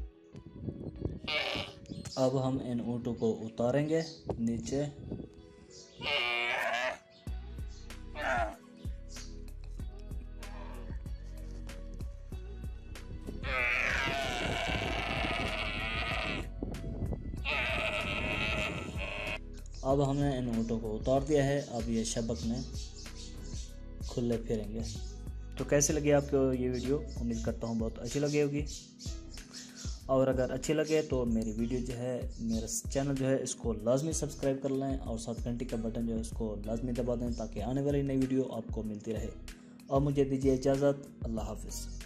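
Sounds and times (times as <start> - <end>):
background music: 0.0 - 42.0
camel calf bleating: 1.2 - 2.0, 5.9 - 7.0, 8.1 - 8.6, 13.3 - 16.5, 17.4 - 19.4.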